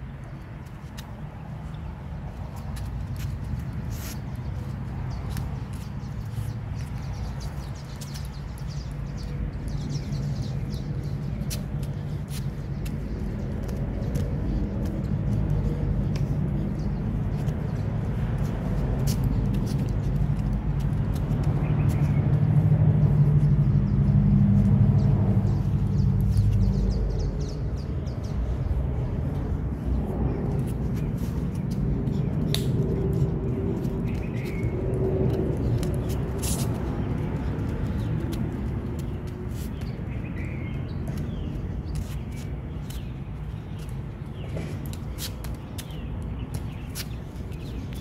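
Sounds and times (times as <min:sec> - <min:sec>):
small birds chirping: 0:00.0 - 0:48.0
steady low rumble: 0:00.0 - 0:48.0
low engine-like hum: 0:01.3 - 0:41.9.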